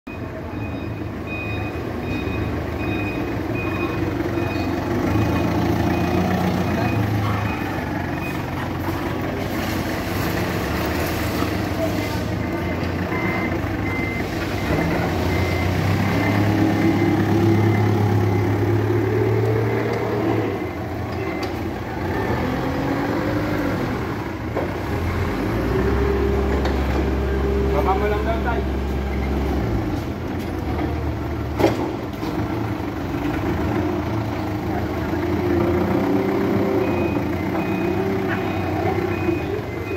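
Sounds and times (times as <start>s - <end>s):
vehicle engines running: 0.1s - 39.9s
forklift engine revving: 1.2s - 39.9s.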